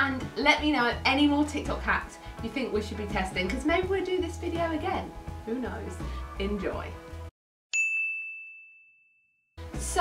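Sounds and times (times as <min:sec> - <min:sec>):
bright ding: 0:07.7 - 0:09.3.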